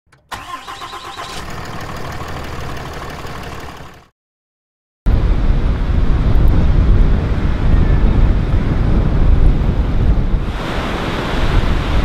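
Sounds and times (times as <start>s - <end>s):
vehicle engine starting and idling: 0.1s - 4.1s.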